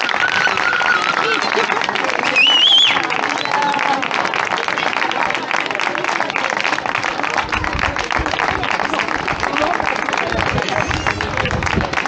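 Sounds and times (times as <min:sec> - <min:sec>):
people applauding: 0:00.0 - 0:12.0.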